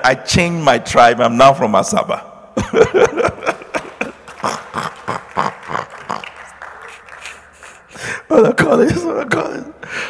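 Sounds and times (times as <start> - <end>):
man laughing into microphone: 2.6 - 9.0.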